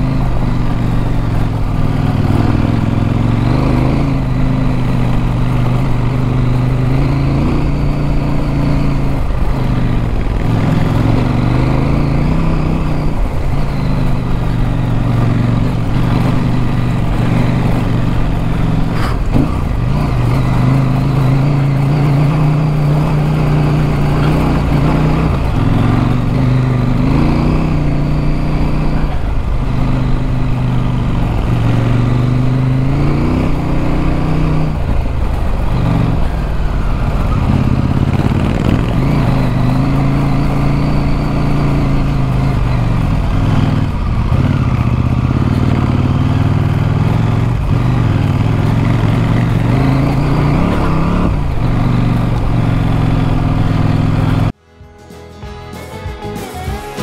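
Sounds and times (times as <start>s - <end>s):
motorcycle engine running: 0.0s - 54.7s
wind and road noise: 0.0s - 54.8s.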